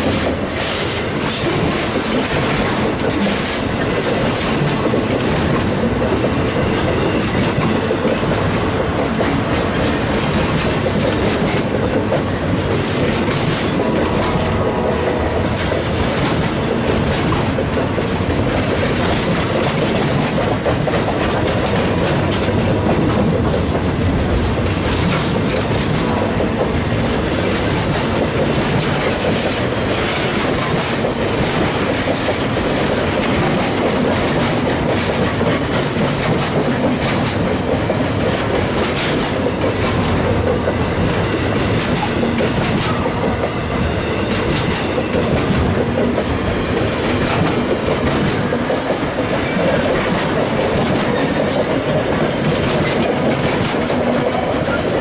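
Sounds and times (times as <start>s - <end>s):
freight train wheels rumbling: 0.0s - 55.0s
sharp clicks from train wheels: 0.0s - 55.0s.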